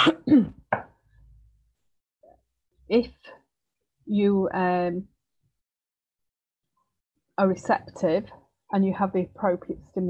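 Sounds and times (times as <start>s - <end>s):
woman coughing: 0.0s - 0.6s.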